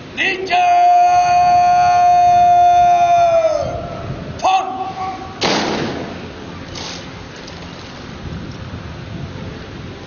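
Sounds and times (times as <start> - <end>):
drill command shouted: 0.2 - 3.8, 4.4 - 5.4.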